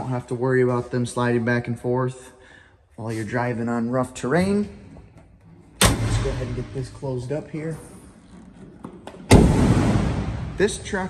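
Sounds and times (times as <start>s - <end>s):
metal hatch slamming bang: 5.8s - 7.0s, 9.3s - 10.7s.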